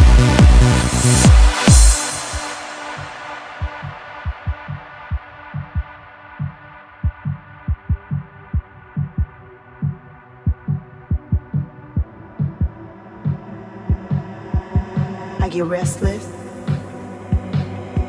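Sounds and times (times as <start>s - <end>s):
deep kick drums: 0.0s - 2.5s, 3.6s - 18.0s.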